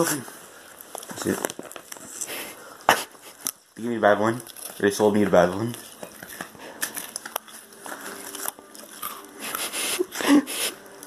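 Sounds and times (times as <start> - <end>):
seal crinkling and scraping: 0.0 - 10.4.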